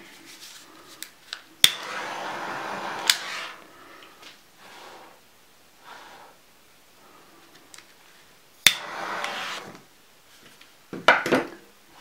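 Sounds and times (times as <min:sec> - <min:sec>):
heat tool hissing: 0:01.6 - 0:05.2, 0:08.6 - 0:09.9.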